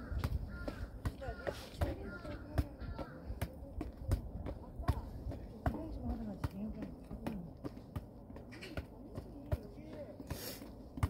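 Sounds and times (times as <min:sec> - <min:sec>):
ball thudding on rock: 0:00.0 - 0:11.0.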